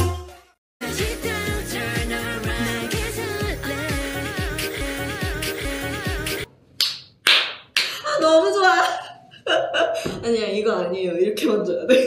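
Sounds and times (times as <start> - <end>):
hand claps: 6.8 - 8.0
woman laughing and talking: 8.0 - 10.3, 11.7 - 12.0.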